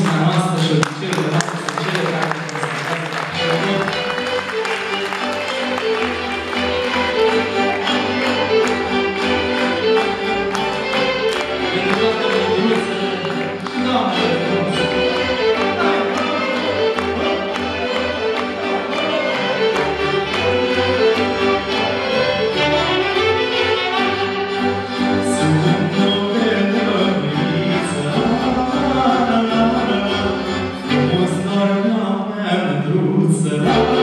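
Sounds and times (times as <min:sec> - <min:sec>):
folk orchestra playing: 0:00.0 - 0:34.0.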